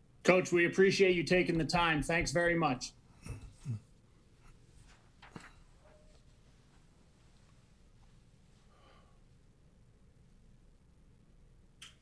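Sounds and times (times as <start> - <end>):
paper rustling: 4.8 - 6.3.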